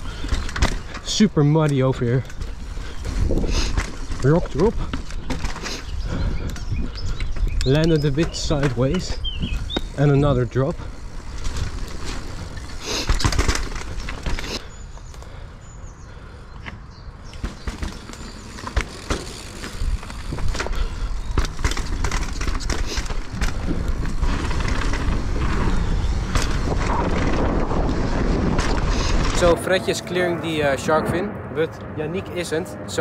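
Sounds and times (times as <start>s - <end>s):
bike knocking and rattling: 0.0s - 15.1s, 16.6s - 29.6s
bike tyres rolling on dirt: 0.0s - 31.0s.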